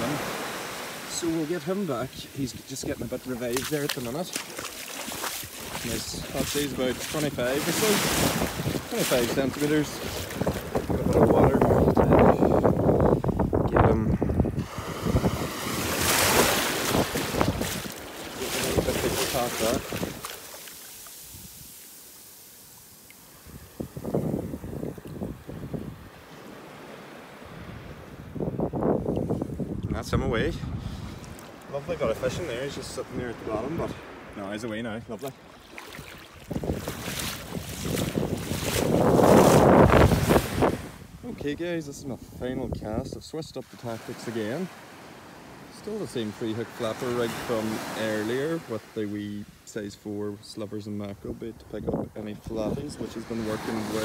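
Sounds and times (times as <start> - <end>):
small wave washing in: 0.0 - 11.3, 14.6 - 27.7, 35.4 - 41.0
seawater splashing around a hand: 2.2 - 11.8, 15.4 - 23.1, 35.6 - 40.8
wind on microphone: 5.1 - 20.4, 23.3 - 26.3, 27.5 - 34.1, 36.0 - 43.2, 51.3 - 53.8.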